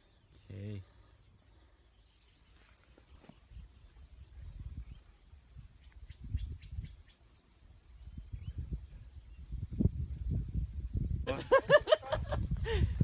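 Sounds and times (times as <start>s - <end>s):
low rumbling on microphone: 8.0s - 11.3s.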